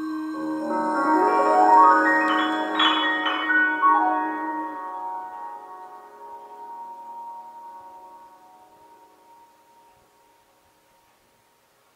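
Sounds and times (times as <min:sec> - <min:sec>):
bell-like chord from speakers: 0:00.0 - 0:10.5.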